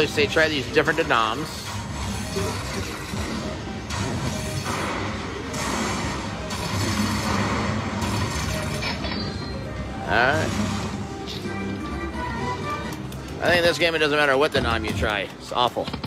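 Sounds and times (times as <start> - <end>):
slot machine music and effects: 0.0 - 15.8
casino background noise: 8.2 - 16.0.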